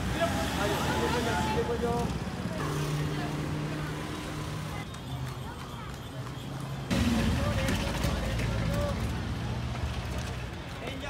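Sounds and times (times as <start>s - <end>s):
low traffic rumble: 0.0s - 11.0s
people's voices: 0.0s - 11.0s.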